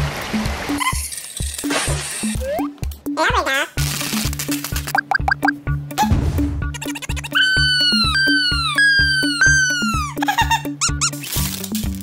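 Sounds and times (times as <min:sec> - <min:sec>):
upbeat background music: 0:01.6 - 0:12.0
squeaky sound effects: 0:02.3 - 0:02.7, 0:06.8 - 0:10.2.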